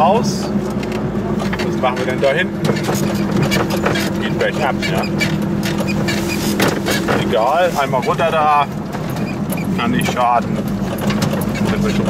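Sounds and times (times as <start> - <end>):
small car engine running: 0.0 - 12.0
knocks and rattles: 0.8 - 12.0.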